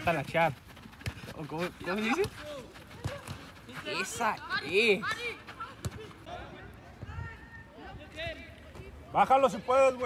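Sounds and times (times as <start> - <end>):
close commentary: 0.0 - 10.0.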